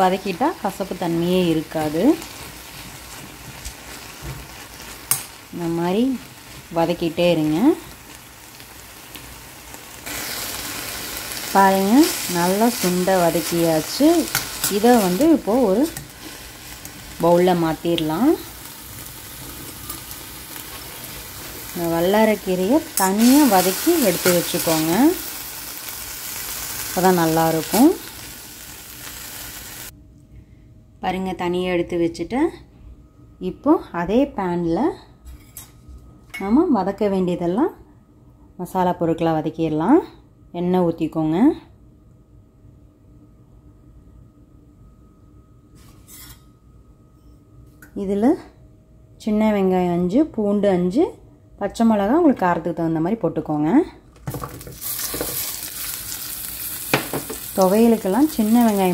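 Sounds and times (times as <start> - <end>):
oil sizzling: 0.0 - 29.9, 54.3 - 58.9.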